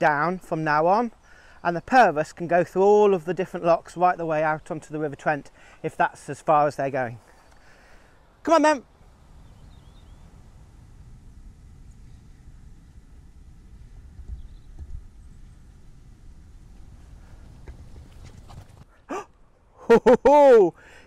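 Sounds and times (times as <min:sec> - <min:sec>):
faint bird chirps: 0:08.8 - 0:10.4, 0:14.2 - 0:15.7
wind rumble on microphone: 0:08.9 - 0:18.9
microphone handling noise: 0:16.6 - 0:18.9.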